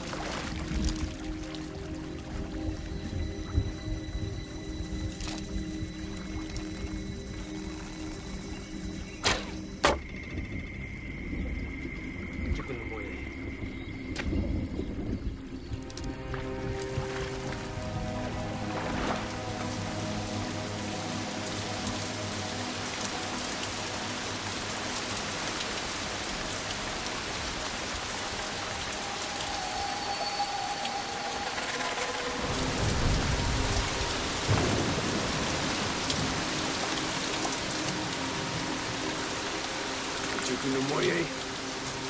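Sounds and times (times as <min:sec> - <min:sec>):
steady rain falling: 0:00.0 - 0:42.0
low roll of thunder: 0:32.5 - 0:36.5.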